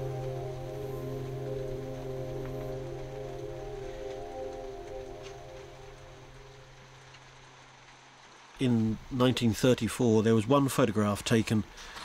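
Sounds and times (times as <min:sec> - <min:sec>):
low drone: 0:00.0 - 0:07.2
ambient music with held tones: 0:00.0 - 0:08.5.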